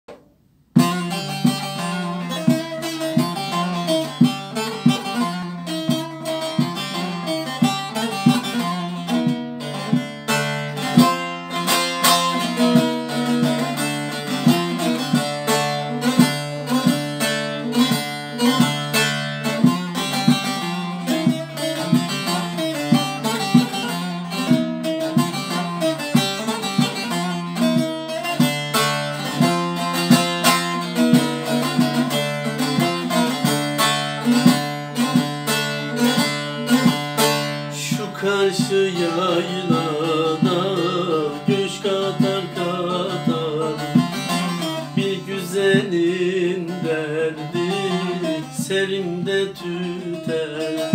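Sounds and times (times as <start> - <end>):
plucked long-necked lute melody: 0.1 - 50.9.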